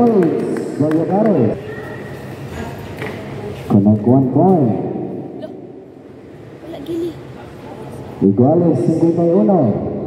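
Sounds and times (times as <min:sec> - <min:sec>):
echoing indoor court noise: 0:00.0 - 0:10.0.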